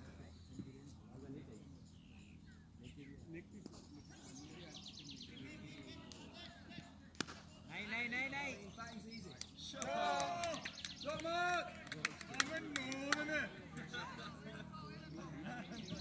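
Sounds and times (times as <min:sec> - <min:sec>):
players shouting: 0:09.6 - 0:14.4.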